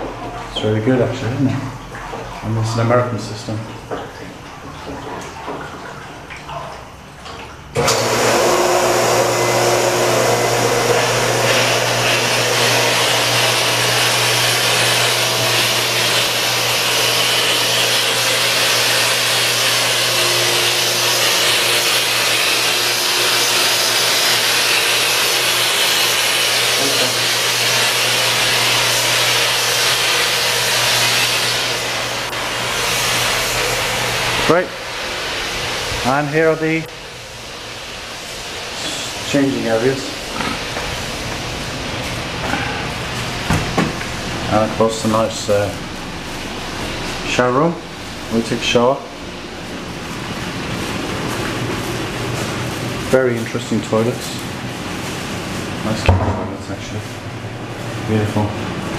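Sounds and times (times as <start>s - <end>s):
pool pump motor hum: 0.0s - 58.9s.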